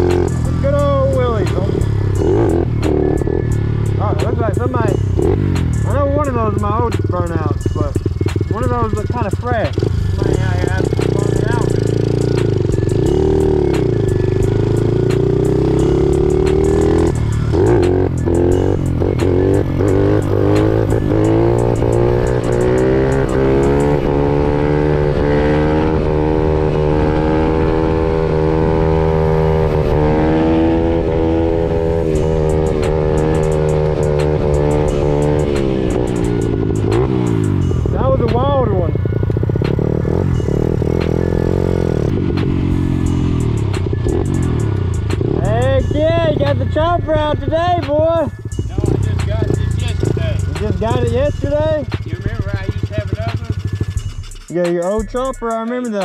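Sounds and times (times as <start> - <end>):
small motorbike engine revving: 9.8 - 37.7.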